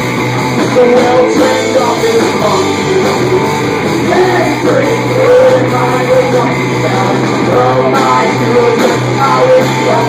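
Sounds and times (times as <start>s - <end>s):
live rock band playing: 0.0s - 10.0s
man singing: 0.6s - 10.0s.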